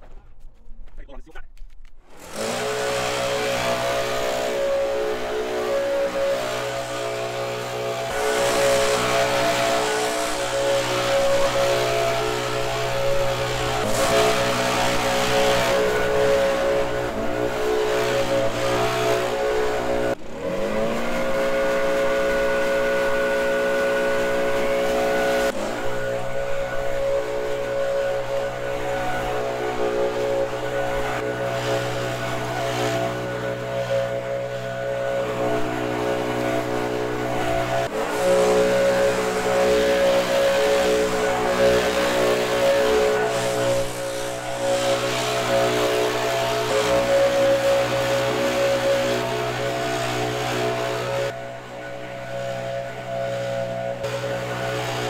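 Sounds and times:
leaf blower engine at high throttle: 0:02.1 - 0:55.0.

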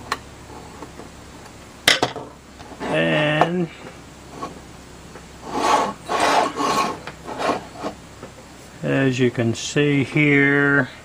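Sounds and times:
plastic case scraping on countertop: 0:05.4 - 0:08.0.

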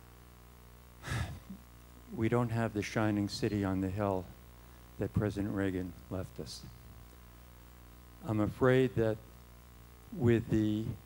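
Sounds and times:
faint room hum: 0:00.0 - 0:11.0
person breathing into microphone: 0:01.0 - 0:01.6.

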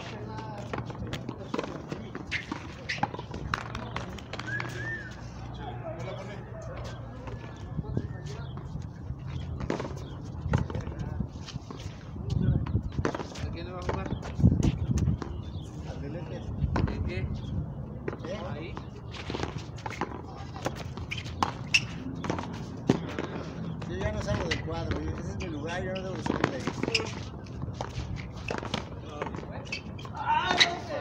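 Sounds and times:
voices talking: 0:00.0 - 0:31.0.

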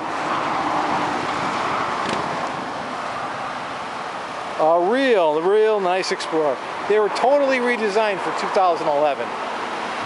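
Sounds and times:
road traffic rushing: 0:00.0 - 0:10.0.

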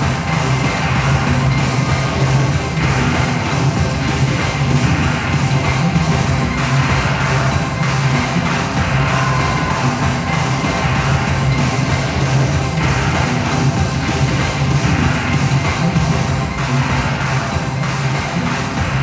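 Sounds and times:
experimental electronic music: 0:00.0 - 0:19.0
pulsing bass: 0:00.0 - 0:19.0.

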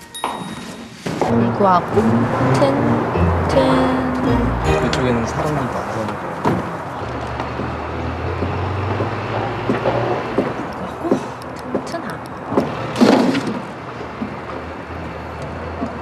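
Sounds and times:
traffic rumble: 0:01.2 - 0:16.0.

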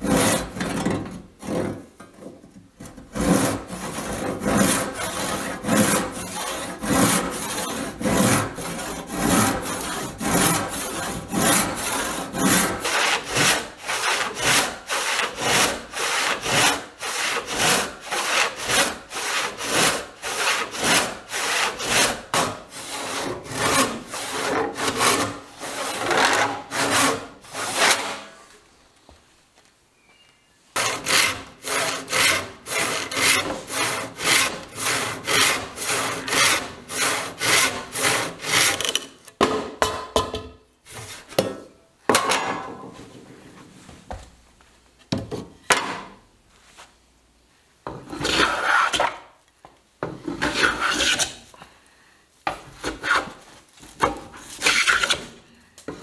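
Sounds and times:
hand saw cutting wood: 0:00.0 - 0:01.9, 0:02.8 - 0:28.4, 0:30.8 - 0:39.1, 0:48.1 - 0:49.2, 0:50.4 - 0:51.5, 0:52.8 - 0:53.4, 0:54.0 - 0:55.4.

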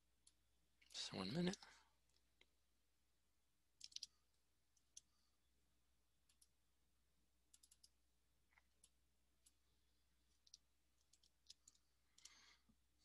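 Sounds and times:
mouse and keyboard clicks: 0:03.8 - 0:04.2, 0:07.5 - 0:09.6.

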